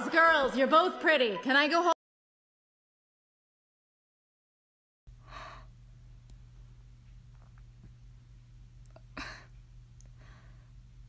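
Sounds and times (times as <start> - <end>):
steady low hum: 5.1 - 11.0.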